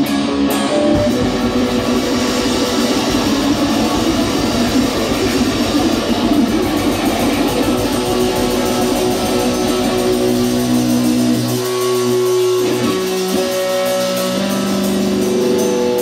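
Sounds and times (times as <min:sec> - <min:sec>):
loud electric guitar strumming: 0:00.0 - 0:16.0.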